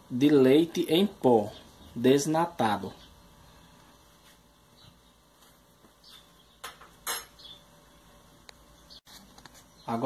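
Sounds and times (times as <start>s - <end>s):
kitchenware clinking: 6.6s - 7.4s.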